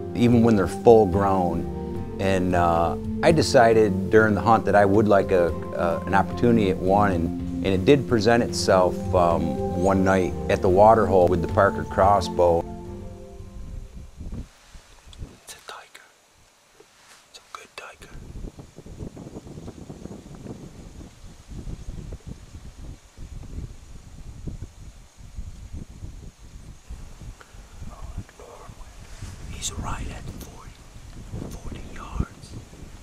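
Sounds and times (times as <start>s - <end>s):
low uneven microphone rumble: 13.4s - 15.9s, 17.8s - 33.0s
hushed whispering: 15.4s - 16.2s, 17.3s - 18.2s, 27.8s - 30.8s, 31.4s - 32.6s.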